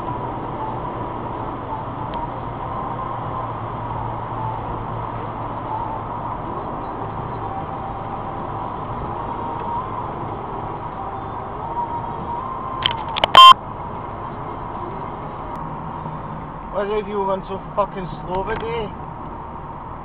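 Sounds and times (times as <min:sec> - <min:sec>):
car road and engine noise: 0:00.0 - 0:20.0
short loud beep: 0:12.8 - 0:13.6.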